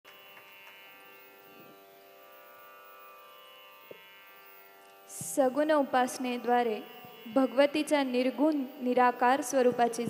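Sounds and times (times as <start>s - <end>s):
droning held notes with buzz: 0.1s - 10.0s.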